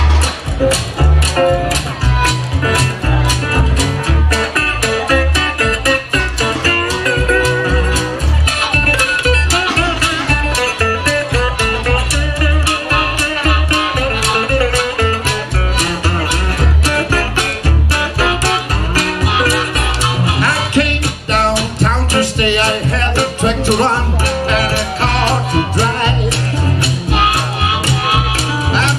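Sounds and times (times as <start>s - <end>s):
guitar: 0.0s - 28.9s
harmonica bending notes: 0.0s - 28.9s
plucked double bass: 0.0s - 28.9s
washboard scraped beat: 0.0s - 28.9s.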